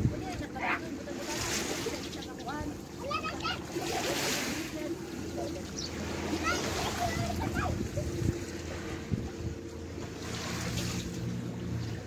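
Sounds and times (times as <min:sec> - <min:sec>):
boat engine humming: 0:00.0 - 0:12.0
sea water sloshing: 0:00.0 - 0:12.0
distant voices calling out: 0:00.1 - 0:10.2.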